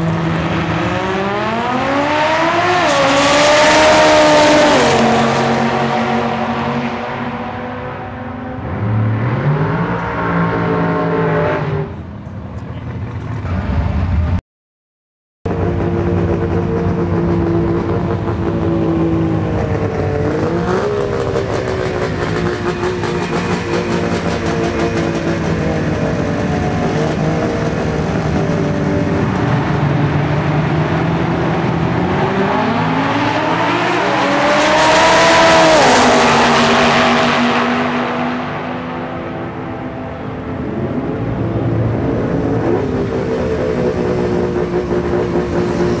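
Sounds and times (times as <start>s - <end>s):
cars accelerating away: 0.0s - 12.2s, 15.5s - 46.0s
race car engines revving: 0.0s - 14.4s, 15.5s - 46.0s.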